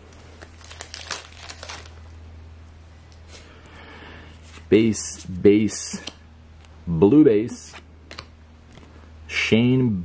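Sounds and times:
cards rustling: 0:00.1 - 0:02.1
foil wrapper crinkling and tearing: 0:00.3 - 0:02.2.

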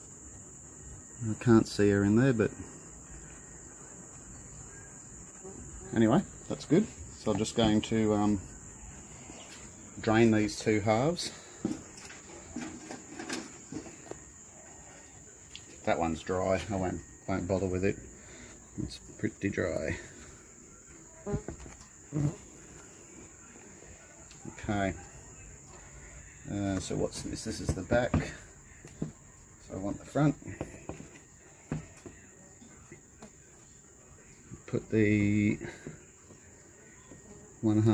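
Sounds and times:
cricket trilling: 0:00.0 - 0:37.9.

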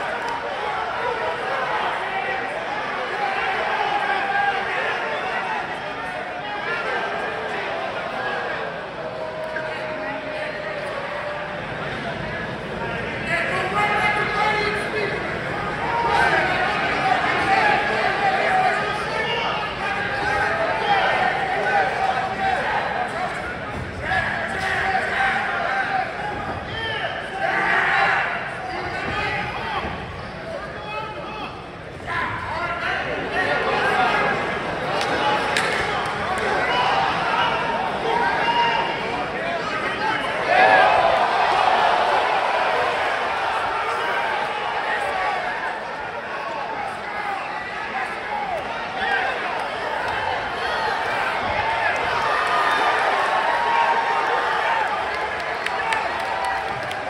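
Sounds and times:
crowd shouting and talking: 0:00.0 - 0:57.0.

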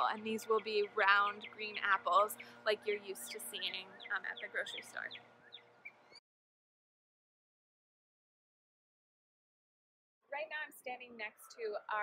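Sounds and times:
faint outdoor background: 0:00.0 - 0:06.3, 0:10.2 - 0:12.0
bird chirps: 0:03.2 - 0:06.2.

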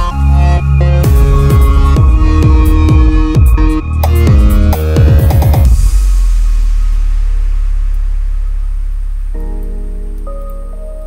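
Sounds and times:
deep sub-bass synth note: 0:00.0 - 0:11.0.

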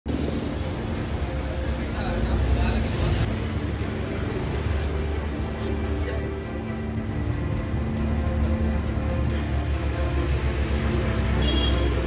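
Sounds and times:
road traffic rumble: 0:00.1 - 0:12.0.

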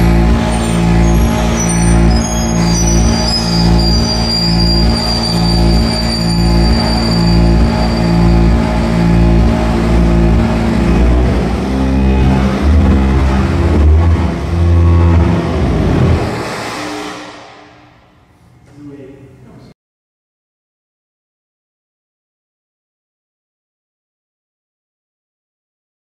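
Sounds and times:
pulsing electronic drone: 0:00.0 - 0:18.3
deep bass: 0:00.0 - 0:18.6.

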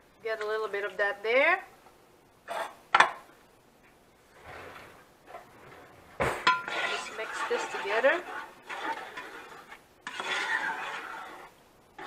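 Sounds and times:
kitchenware clinking: 0:06.2 - 0:08.2.

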